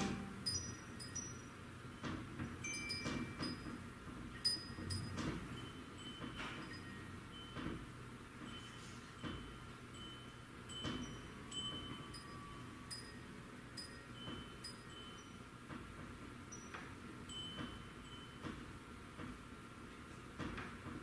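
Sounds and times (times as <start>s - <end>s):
metal wind chime ringing: 0.0s - 1.5s, 2.6s - 3.6s, 10.0s - 13.2s.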